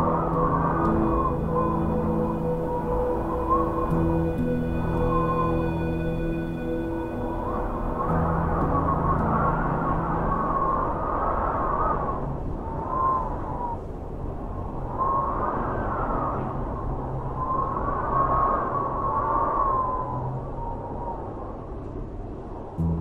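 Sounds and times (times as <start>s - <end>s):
low music drone: 0.0s - 12.6s, 22.6s - 23.0s
wind blowing in gusts: 0.0s - 23.0s.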